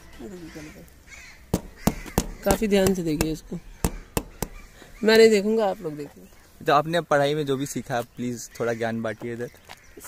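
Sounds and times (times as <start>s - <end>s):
crow cawing: 0.3s - 6.6s.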